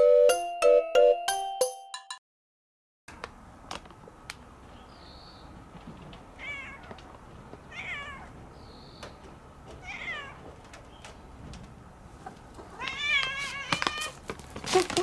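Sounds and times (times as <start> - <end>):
cat meowing: 6.4 - 7.0, 7.7 - 8.4, 9.8 - 10.4, 12.6 - 14.2.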